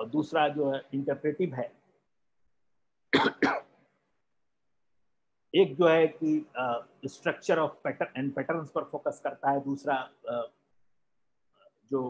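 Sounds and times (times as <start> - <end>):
man coughing: 3.1 - 3.7.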